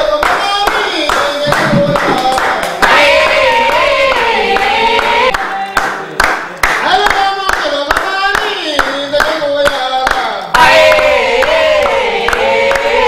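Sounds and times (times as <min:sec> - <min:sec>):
hand clapping: 0:00.0 - 0:13.0
women singing together: 0:00.7 - 0:06.0, 0:10.5 - 0:13.0.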